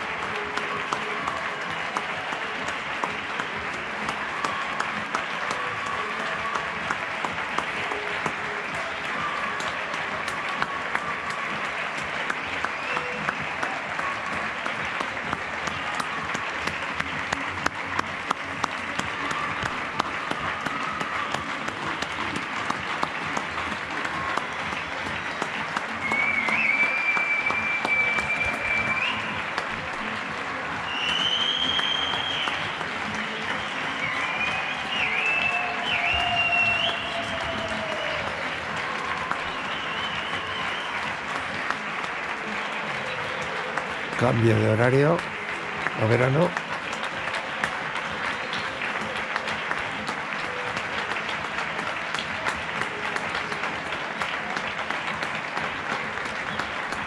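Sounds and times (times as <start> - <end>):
many people clapping: 0.0 - 57.0.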